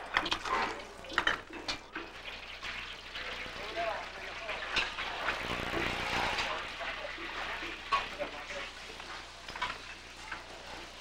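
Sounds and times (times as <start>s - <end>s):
sauce sizzling in a wok: 2.0s - 11.0s
burner noise: 5.2s - 6.6s.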